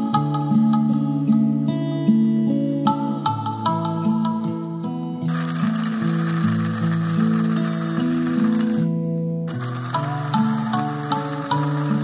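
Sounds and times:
electric coffee grinder whirring: 5.3 - 12.0.

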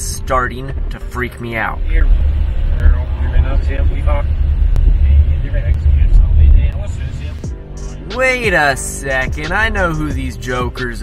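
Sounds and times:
car cabin rumble: 0.0 - 10.3.

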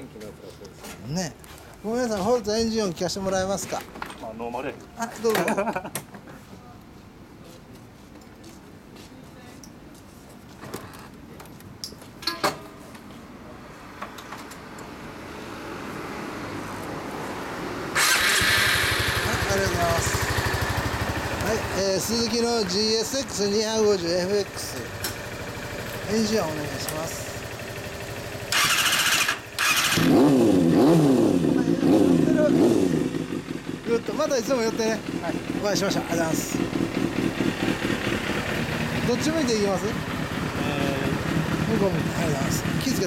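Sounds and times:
passing vehicle rumble: 15.1 - 43.0
motorcycle engine revving: 17.9 - 43.0
motorcycle starter whirring: 18.0 - 30.4.

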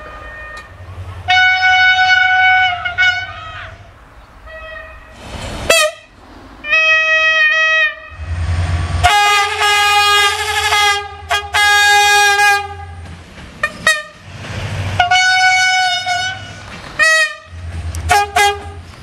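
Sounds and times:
train horn blasts: 0.0 - 13.0, 13.6 - 14.2, 15.0 - 18.9
low rumble of train: 0.0 - 19.0.

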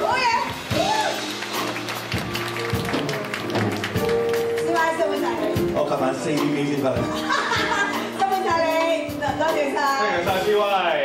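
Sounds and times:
live band playing soft music: 0.0 - 11.0.

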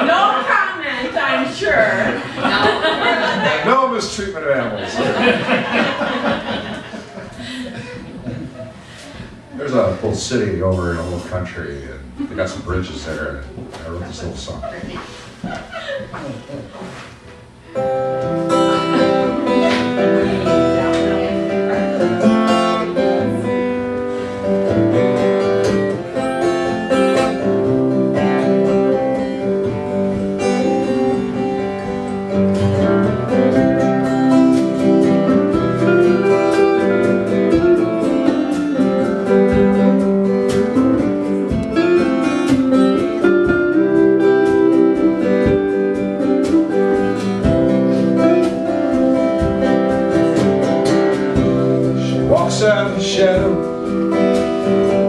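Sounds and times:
drum kit: 16.3 - 55.0
strummed acoustic guitar: 16.3 - 55.0
electric lead guitar: 17.5 - 55.0.

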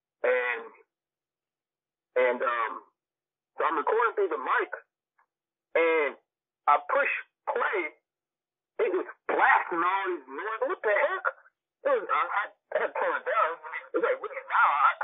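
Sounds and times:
person talking over phone line: 0.2 - 0.8, 2.2 - 3.0, 3.6 - 4.9, 5.8 - 8.0, 8.8 - 15.0.

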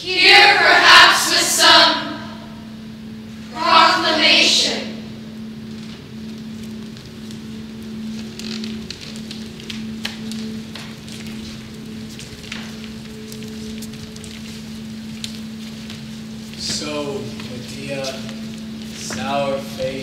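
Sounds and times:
steady low hum: 0.0 - 20.0
footsteps and robes shuffling: 5.4 - 20.0.

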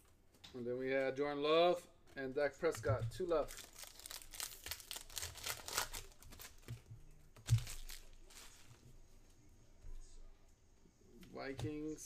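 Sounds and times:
cards being handled: 2.6 - 8.8
foil wrapper crinkling and tearing: 3.4 - 6.8, 7.4 - 8.7.

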